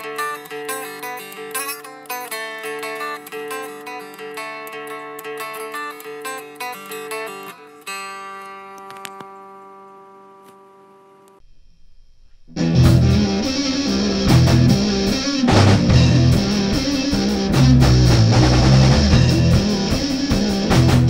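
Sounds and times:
clean guitar picking: 0.0 - 10.3, 12.5 - 21.0
sludge metal band playing: 12.6 - 21.0.

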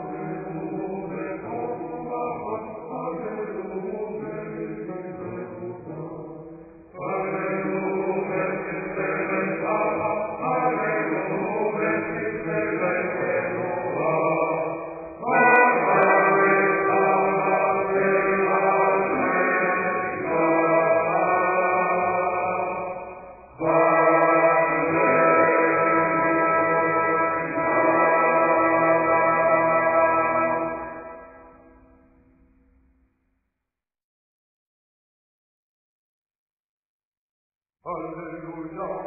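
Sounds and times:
chanted psalm singing: 0.0 - 31.7.

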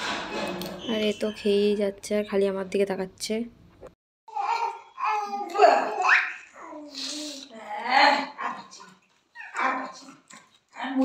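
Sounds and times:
baby squealing: 4.3 - 6.9, 9.4 - 10.1.

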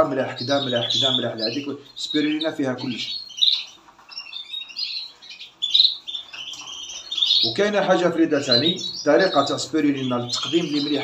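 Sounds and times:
finches chirping: 0.0 - 11.0.

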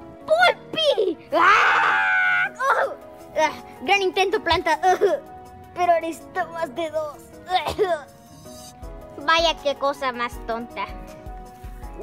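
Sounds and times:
high-pitched character scream: 1.4 - 2.9.

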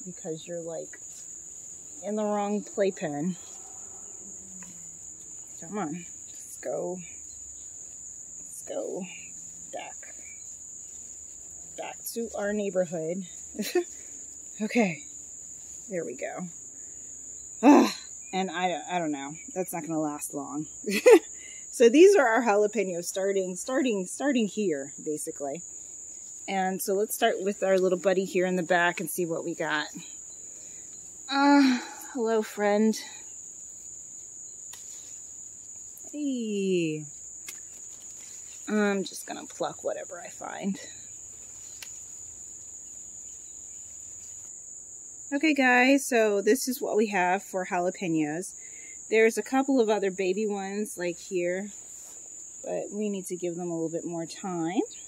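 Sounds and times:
crickets chirping: 0.0 - 55.0
pruning snips clicking: 37.4 - 38.2, 41.8 - 42.0.

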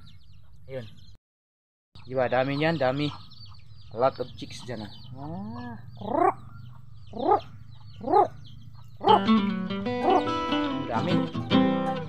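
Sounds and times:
chicks peeping: 0.0 - 1.2, 2.0 - 10.3
animal calls rising and falling: 7.1 - 8.4
plucked string music: 9.1 - 12.0.

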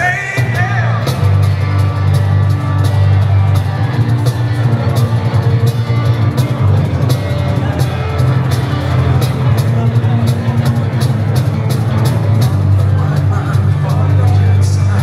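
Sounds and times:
acoustic guitar: 0.0 - 15.0
cajon beat: 0.0 - 15.0
electric bass: 0.0 - 15.0.

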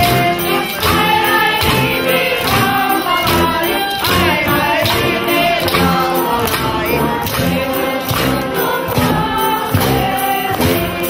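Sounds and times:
group of people singing: 0.0 - 11.0.

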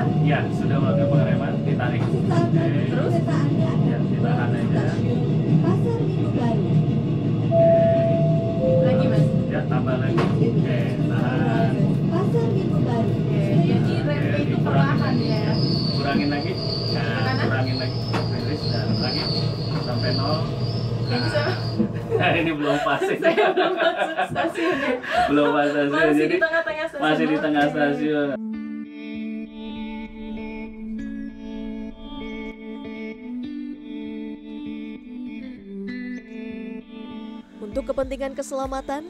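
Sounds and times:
train rumble: 0.0 - 25.1
two-tone chime: 7.6 - 9.6
brake squeal: 15.0 - 22.0.

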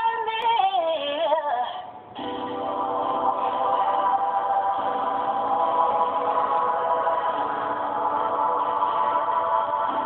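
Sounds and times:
sustained backing chords: 2.2 - 10.0.

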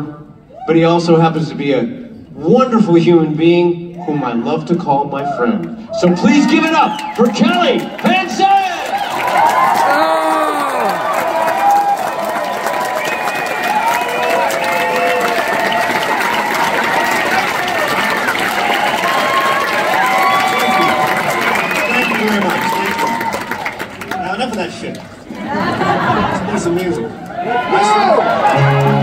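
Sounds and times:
audience cheering and shouting: 5.1 - 24.0, 26.8 - 29.0
applause: 6.4 - 25.4, 28.4 - 29.0.

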